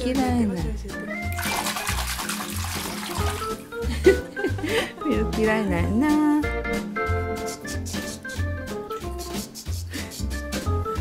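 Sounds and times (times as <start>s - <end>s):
water splashing in plastic basin: 1.3s - 3.6s.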